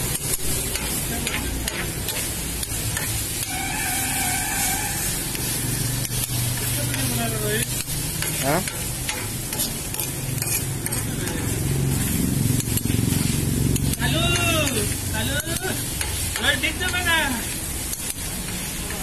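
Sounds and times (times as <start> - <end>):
food sizzling in oil: 0.0 - 19.0
utensils scraping and clicking on metal: 0.0 - 19.0.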